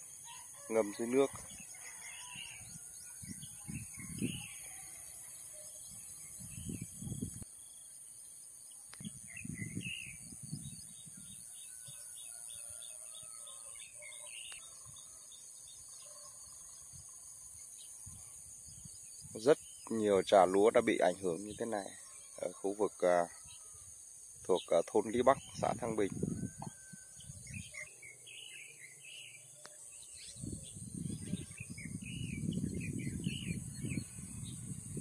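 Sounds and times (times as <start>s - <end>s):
small birds chirping: 0.0s - 7.9s, 8.7s - 35.0s
steady high-pitched hiss: 0.0s - 13.5s, 14.4s - 35.0s.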